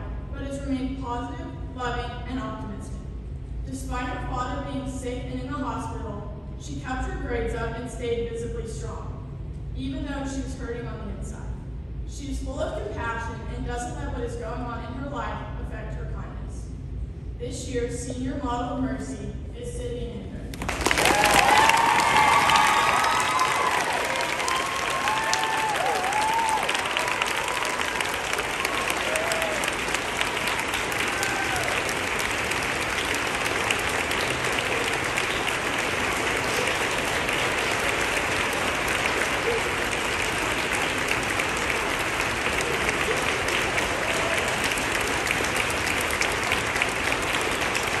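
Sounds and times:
audience clapping and cheering: 20.5 - 48.0
shouts and whoops: 21.0 - 29.9, 31.0 - 32.0.

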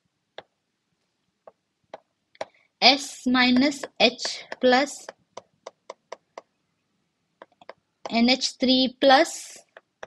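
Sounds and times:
stylus tapping on glass screen: 1.5 - 2.6, 3.4 - 6.5, 7.4 - 8.2, 9.6 - 10.0.

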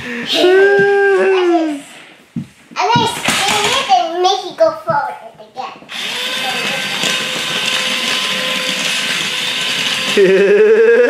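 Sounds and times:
toy motor and gears whirring: 5.9 - 10.6.

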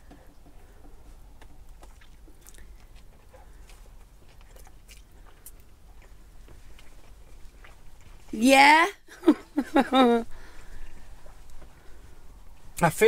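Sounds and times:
man chewing food: 0.0 - 8.3, 9.4 - 12.8.

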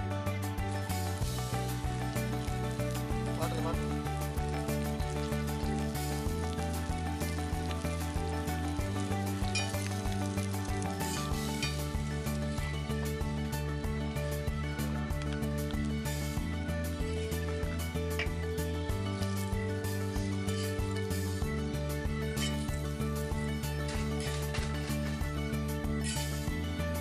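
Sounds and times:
background music: 0.0 - 27.0
fish sizzling in oil: 0.5 - 27.0.

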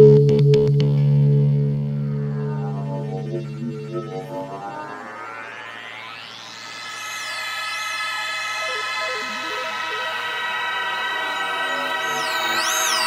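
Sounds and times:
synthesizer music: 1.6 - 13.0
rising synth sweep: 1.7 - 13.0.

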